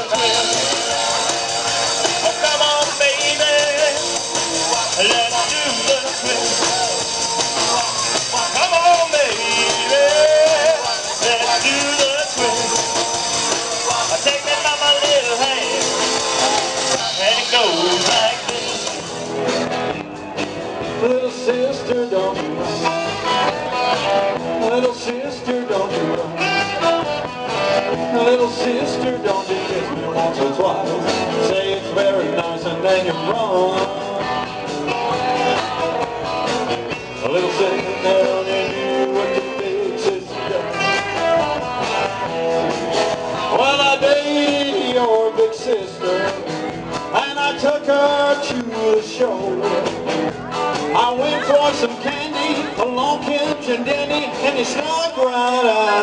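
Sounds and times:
person singing: 0.0s - 19.2s, 20.8s - 42.2s, 43.2s - 56.0s
drums: 0.0s - 56.0s
electric guitar: 0.0s - 56.0s
live rock and roll band: 0.0s - 56.0s.

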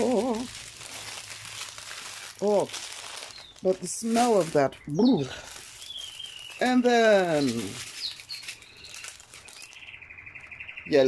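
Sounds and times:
small bird trilling: 2.4s - 11.0s.

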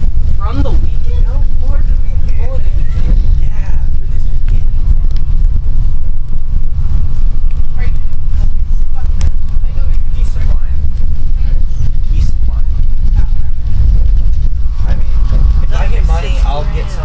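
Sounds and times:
bus engine and road rumble: 0.0s - 17.0s.

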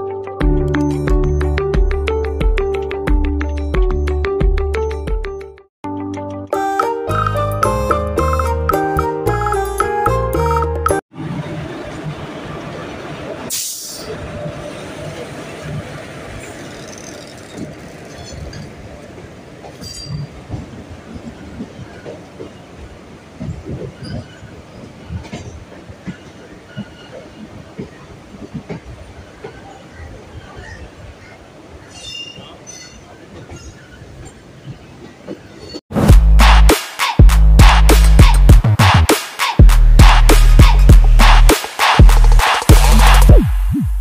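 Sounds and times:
train rumbling on rails: 11.1s - 36.3s
short hiss: 13.5s - 14.1s.

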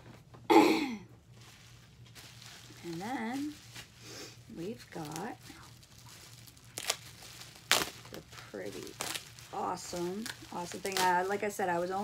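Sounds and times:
bubble wrap crinkling: 1.2s - 12.0s
bubble wrap sharp crackles: 1.3s - 12.0s.

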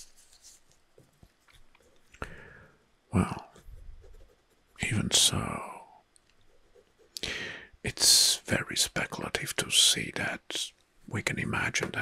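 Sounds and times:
breath in: 2.2s - 2.8s, 7.2s - 7.7s
soft-spoken talk: 4.8s - 5.9s, 7.9s - 12.0s.

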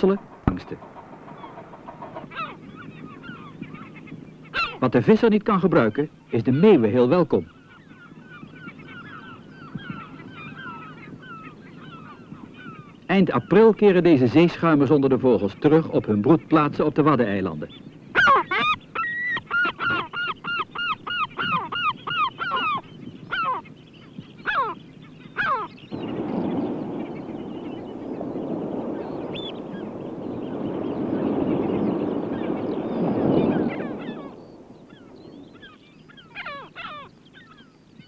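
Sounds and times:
gulls calling: 0.0s - 38.0s
breaking surf: 26.0s - 35.2s.

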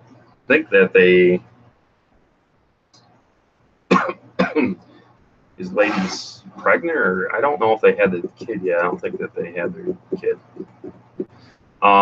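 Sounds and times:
man coughing: 3.9s - 4.8s, 5.7s - 6.8s.

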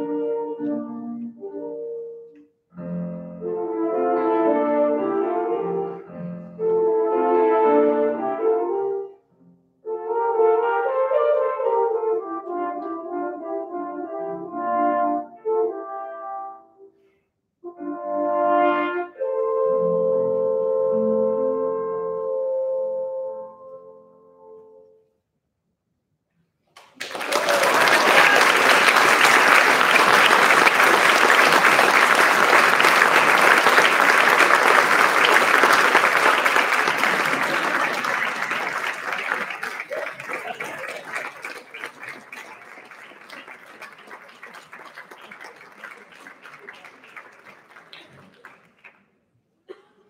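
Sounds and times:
audience applause: 26.8s - 49.0s.

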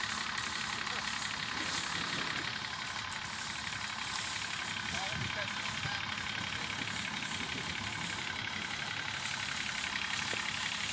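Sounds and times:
tractor engine chugging: 0.0s - 10.9s.

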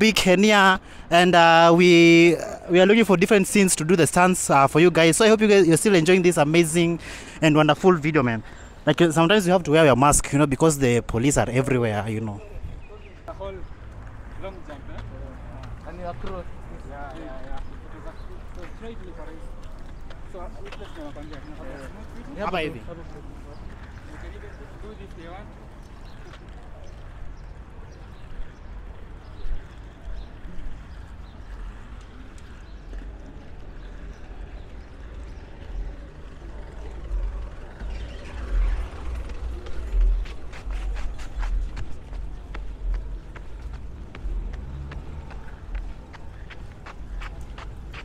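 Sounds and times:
street noise: 0.0s - 48.0s.

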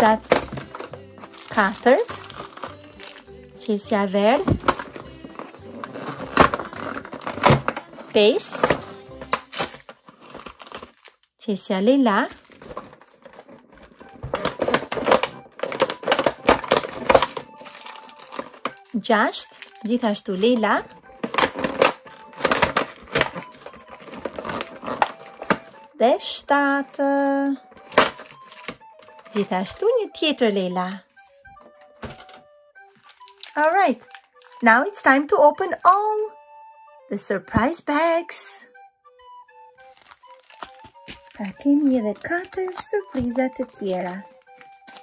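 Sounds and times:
paper crinkling: 0.0s - 3.5s, 4.3s - 11.4s, 12.2s - 26.0s, 27.6s - 30.0s, 31.1s - 34.8s, 39.8s - 45.0s
background music: 0.0s - 45.0s.

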